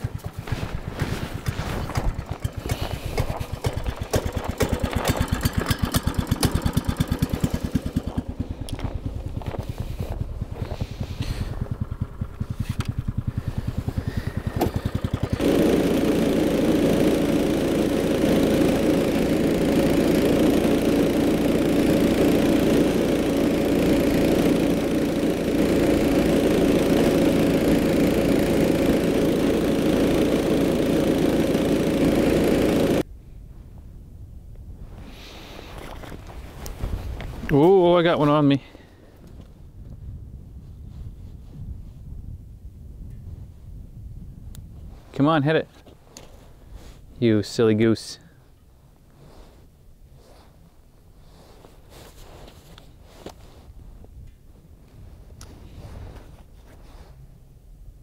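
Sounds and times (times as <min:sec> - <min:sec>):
power ice auger motor: 0:01.3 - 0:33.0.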